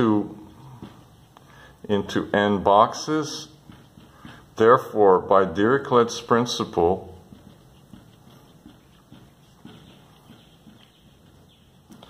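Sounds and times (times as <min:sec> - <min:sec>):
marker writing on whiteboard: 0:00.0 - 0:12.0.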